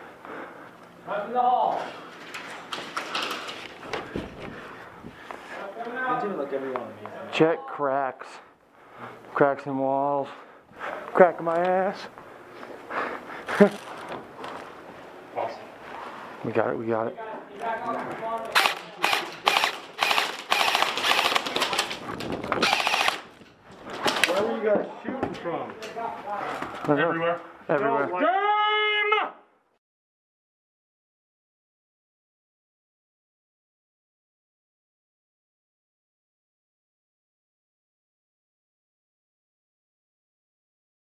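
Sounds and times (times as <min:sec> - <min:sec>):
airsoft guns firing full-auto: 0:18.5 - 0:22.0, 0:22.6 - 0:23.3.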